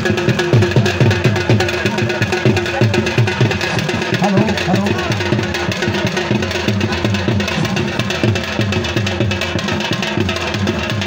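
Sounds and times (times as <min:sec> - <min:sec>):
fast low drum beat music: 0:00.0 - 0:11.0.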